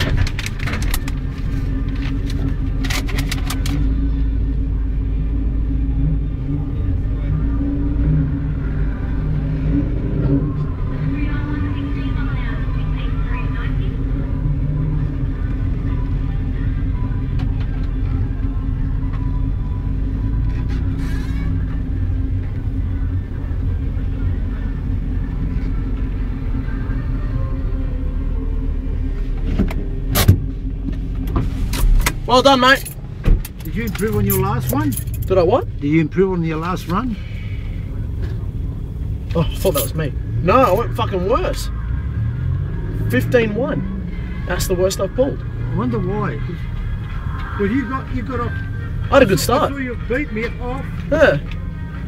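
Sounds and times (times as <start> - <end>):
car engine idling: 0.0 - 52.0.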